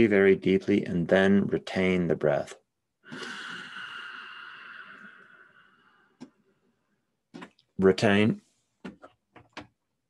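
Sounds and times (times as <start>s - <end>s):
man inhaling deeply through nose: 3.0s - 6.2s.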